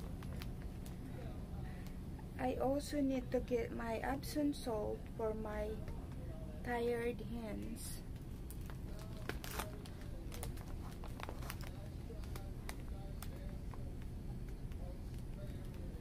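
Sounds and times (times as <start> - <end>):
light clicks and crinkling: 0.0 - 1.0, 8.2 - 15.9
low steady hum: 0.0 - 16.0.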